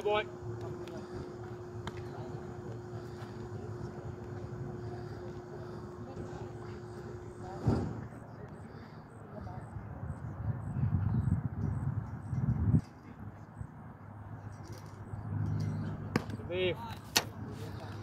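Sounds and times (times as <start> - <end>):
indistinct voices: 0.0 - 11.0
low rumbling noise: 0.0 - 18.0
steady hum: 0.0 - 18.0.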